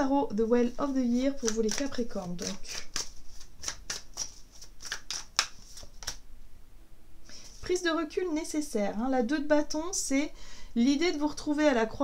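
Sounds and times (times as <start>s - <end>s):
cards being shuffled by hand: 0.6s - 6.2s.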